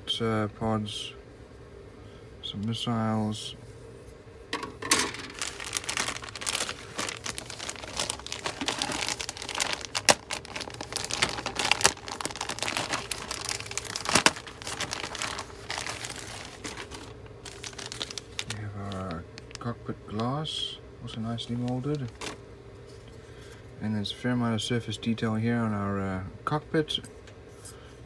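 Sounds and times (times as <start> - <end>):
plastic bags crinkling: 4.6 - 19.6, 21.4 - 22.4.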